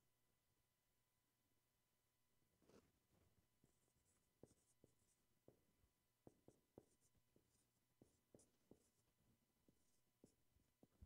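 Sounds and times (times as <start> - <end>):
marker tapping on whiteboard: 4.4 - 11.0.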